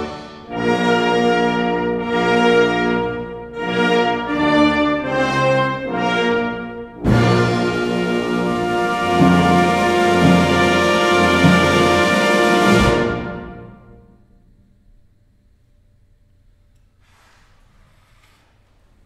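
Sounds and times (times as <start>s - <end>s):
brass section playing chords: 0.0s - 14.1s
full ensemble chord: 0.0s - 14.3s
hall reverberation: 0.0s - 15.6s.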